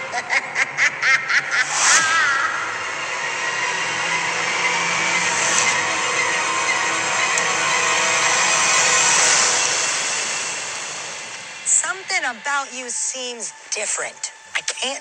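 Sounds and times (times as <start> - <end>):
rushing wash of noise: 0.0 - 14.5
faint held musical tones: 3.6 - 15.0.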